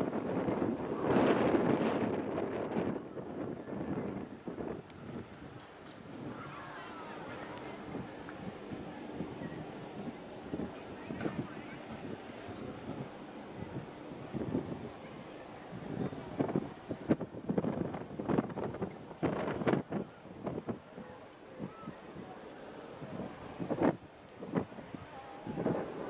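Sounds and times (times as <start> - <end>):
wind buffeting microphone: 0.0 - 26.0.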